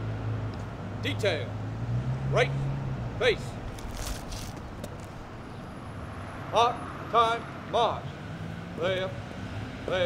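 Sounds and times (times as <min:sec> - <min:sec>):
feet scuffing and clicking on grass: 0:03.7 - 0:05.1.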